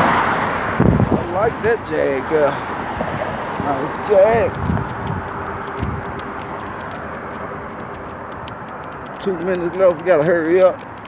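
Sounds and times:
street traffic noise: 0:00.0 - 0:11.0
footstep ticks: 0:01.4 - 0:11.0.

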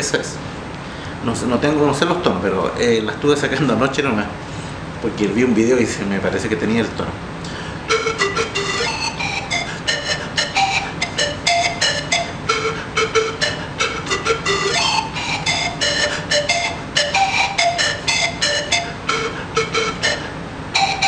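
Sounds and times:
panpipe melody: 0:07.8 - 0:21.0.

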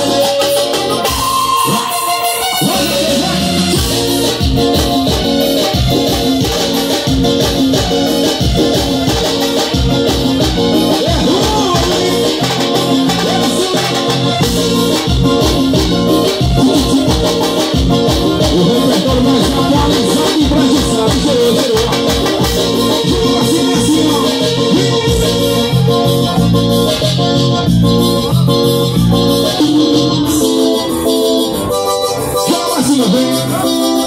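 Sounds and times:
electronic keyboard: 0:00.0 - 0:34.0.

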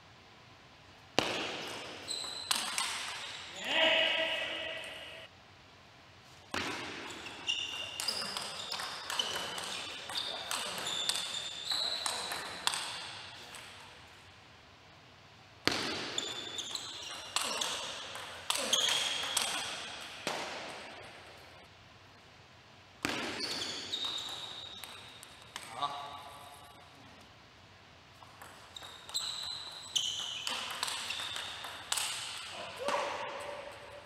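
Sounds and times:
shoes squeaking on floor: 0:02.0 - 0:03.6, 0:07.0 - 0:13.6, 0:16.1 - 0:20.0, 0:23.2 - 0:25.6, 0:28.4 - 0:33.1.

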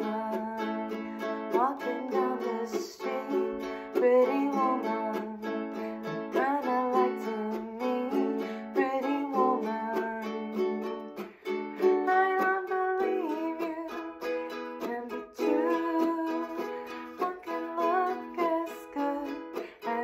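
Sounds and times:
woman singing: 0:00.0 - 0:11.1, 0:11.7 - 0:20.0
ukulele strumming: 0:00.0 - 0:20.0.

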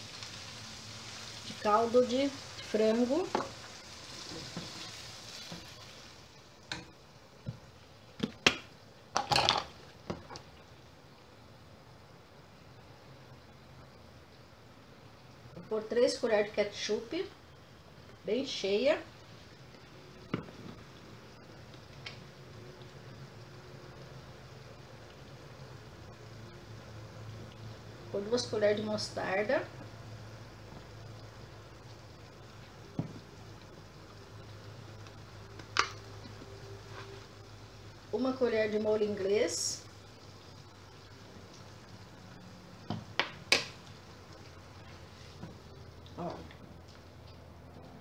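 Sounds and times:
broth simmering in a pan: 0:00.0 - 0:48.0.

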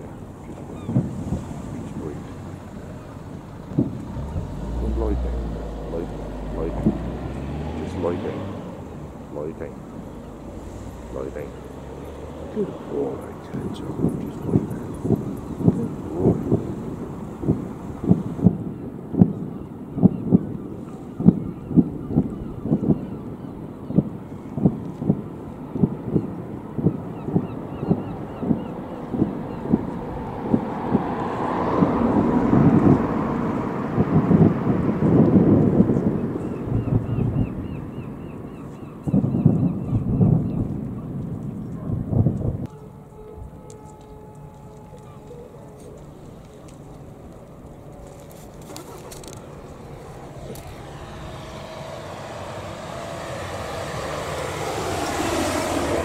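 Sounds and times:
distant fireworks booming: 0:12.6 - 0:23.0.

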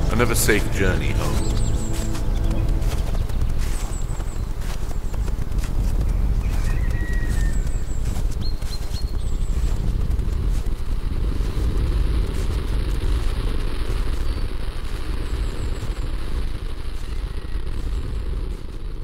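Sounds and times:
wind buffeting microphone: 0:00.0 - 0:19.0
faint bird chirps: 0:06.1 - 0:09.8.

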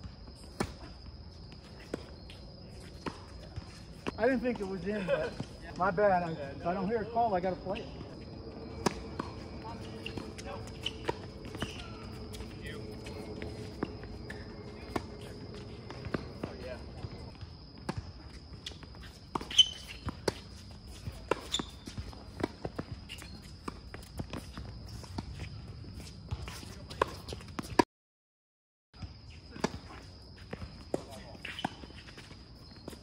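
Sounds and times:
footsteps on court: 0:00.0 - 0:27.8, 0:29.0 - 0:33.0
tennis balls struck by racquets: 0:06.7 - 0:18.1
balls bouncing on hard court: 0:07.4 - 0:25.5.

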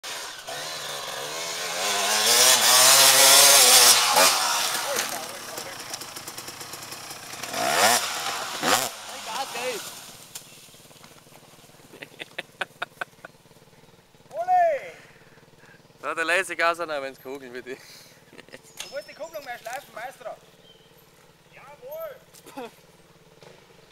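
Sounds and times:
dirt bike engine revving: 0:00.0 - 0:23.9.

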